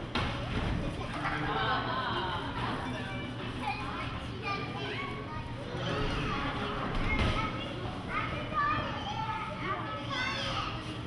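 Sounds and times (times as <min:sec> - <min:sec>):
audience chattering and calling out: 0:00.0 - 0:11.0.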